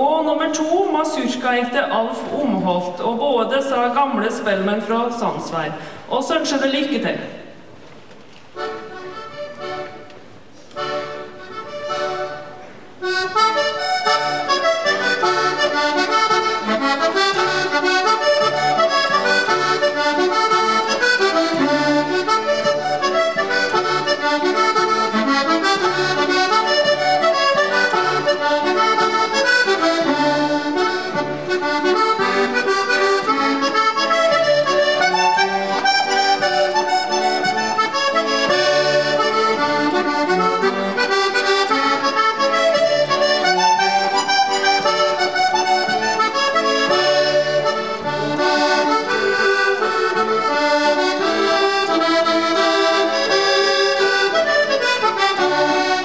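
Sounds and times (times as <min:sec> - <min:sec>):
button accordion playing waltz: 0:00.0 - 0:05.8, 0:08.5 - 0:56.0.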